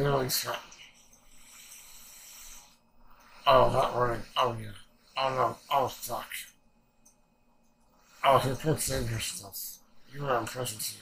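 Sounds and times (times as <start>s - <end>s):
exhale through the nose: 1.3s - 3.5s.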